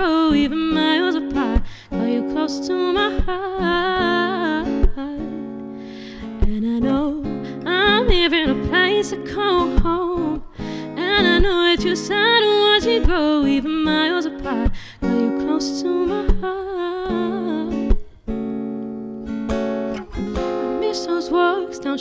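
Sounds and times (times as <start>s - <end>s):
woman singing: 0.0s - 18.2s, 20.4s - 22.0s
acoustic guitar: 0.0s - 22.0s.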